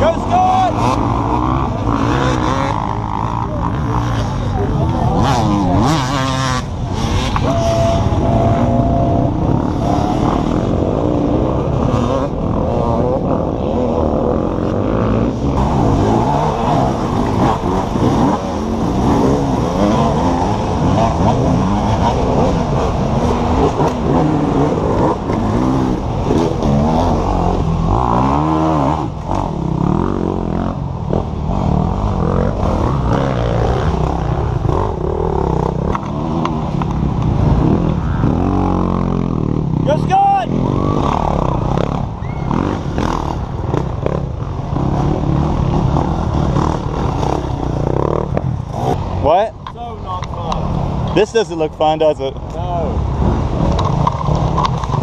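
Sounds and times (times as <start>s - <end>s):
motorcycles revving and passing: 0.0s - 55.0s.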